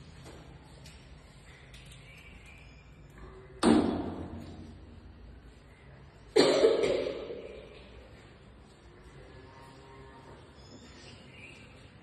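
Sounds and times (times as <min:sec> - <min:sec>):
person coughing: 0:06.3 - 0:07.7.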